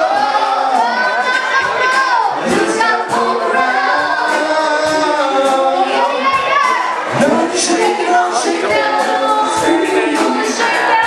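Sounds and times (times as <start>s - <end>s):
drums: 0.0s - 11.0s
woman singing: 0.0s - 11.0s.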